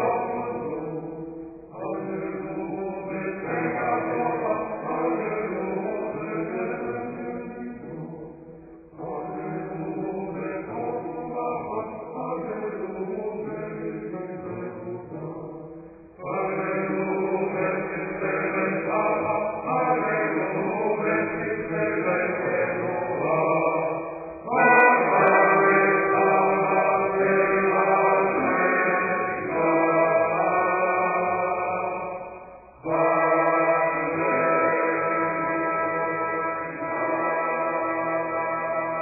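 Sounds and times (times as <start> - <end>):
chanted singing: 0.0 - 15.6, 16.2 - 39.0.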